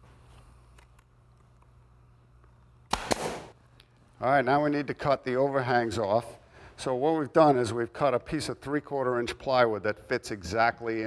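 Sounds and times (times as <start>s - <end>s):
nail gun firing: 2.9s - 3.5s.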